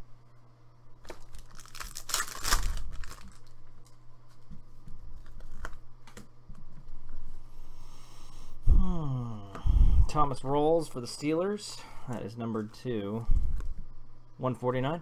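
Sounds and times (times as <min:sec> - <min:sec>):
foil wrapper ripping: 0:01.0 - 0:03.9
cards rustling and clicking: 0:01.0 - 0:06.9.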